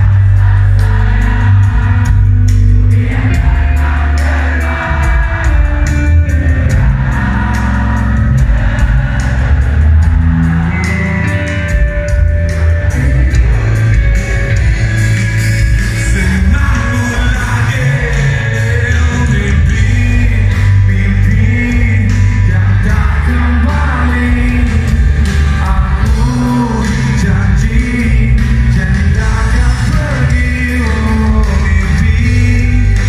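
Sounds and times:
live rock band: 0.0 - 33.0
person singing: 0.0 - 33.0.

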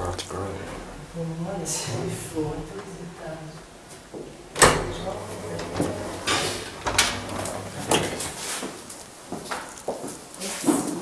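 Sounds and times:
elevator door knocks and clicks: 4.5 - 8.3.

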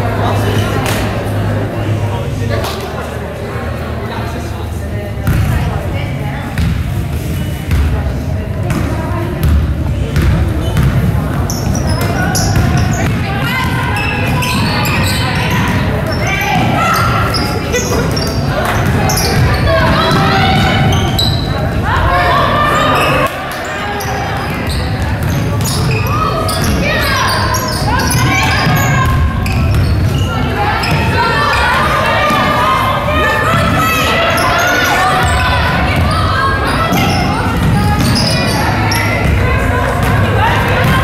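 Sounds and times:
players and coaches calling out: 0.0 - 41.0.

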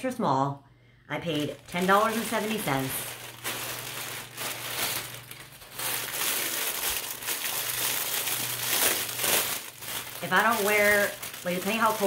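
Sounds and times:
plastic packaging crinkling: 1.2 - 12.0.

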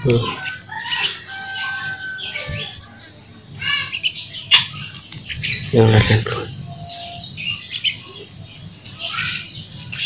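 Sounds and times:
birds calling and chirping: 0.0 - 10.0.

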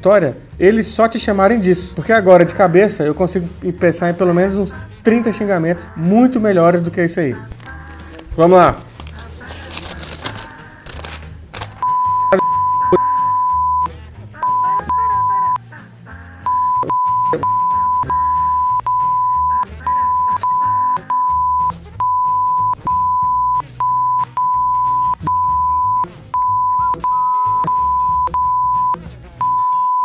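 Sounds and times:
background music: 0.0 - 30.0
person speaking: 7.6 - 11.8
high-pitched censor beeps: 11.8 - 15.6, 16.5 - 30.0.

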